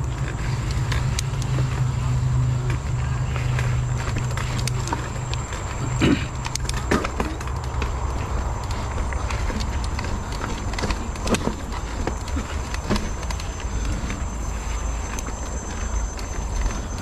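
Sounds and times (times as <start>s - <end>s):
bike tyres clattering on stones: 0.0s - 17.0s.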